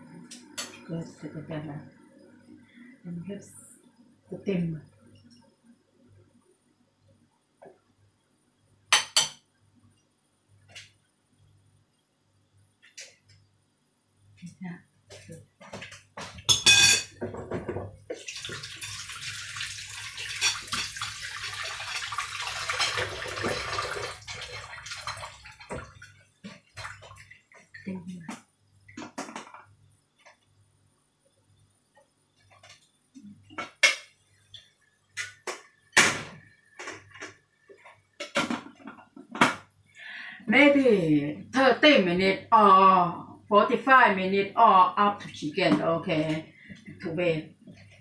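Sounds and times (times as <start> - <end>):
water running: 15.2 - 30.4
pot and dishes clinking: 16.4 - 17.8, 20.3 - 21.0.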